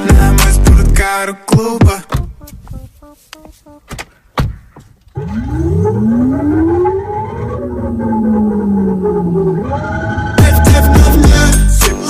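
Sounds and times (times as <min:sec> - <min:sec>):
siren-like wail: 0:05.2 - 0:11.2.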